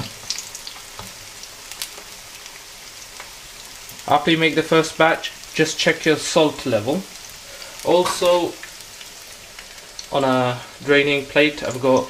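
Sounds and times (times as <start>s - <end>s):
food deep-frying in hot oil: 0.0s - 12.0s.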